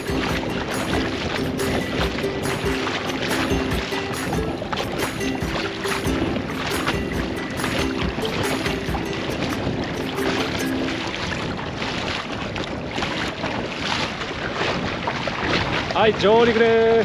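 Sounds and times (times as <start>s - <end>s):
background music: 0.0s - 11.1s
wading and splashing in water: 0.0s - 17.0s
wind buffeting microphone: 0.0s - 17.0s.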